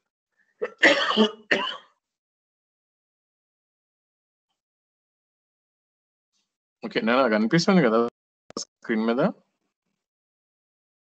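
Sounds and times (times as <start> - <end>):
person coughing: 0.6 - 2.0.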